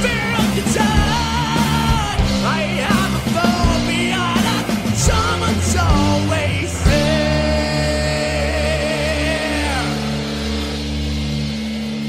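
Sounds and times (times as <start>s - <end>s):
bass tones: 0.0s - 12.0s
rock music chord: 0.0s - 12.0s.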